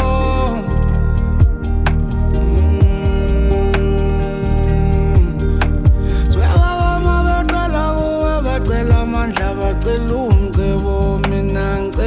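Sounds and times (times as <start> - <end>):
backing beat with heavy bass: 0.0 - 12.0
man singing into a microphone: 0.0 - 12.0.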